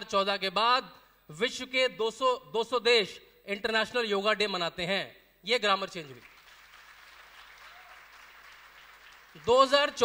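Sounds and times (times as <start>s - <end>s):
faint audience applause: 6.2s - 10.0s.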